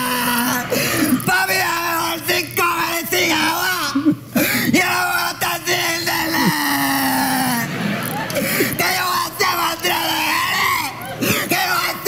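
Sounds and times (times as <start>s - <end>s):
person wailing cry: 0.0s - 1.4s, 6.1s - 7.7s.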